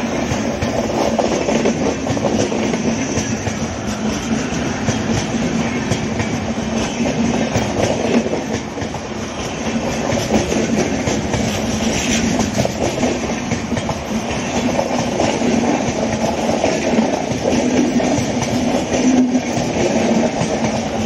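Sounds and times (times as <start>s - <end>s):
train wheels rumbling on rails: 0.0s - 21.0s
wheels clicking over rail joints: 0.2s - 21.0s.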